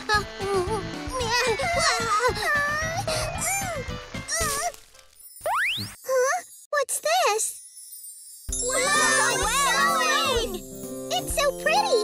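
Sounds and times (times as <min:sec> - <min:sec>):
cartoon background music: 0:00.0 - 0:06.9, 0:08.5 - 0:12.0.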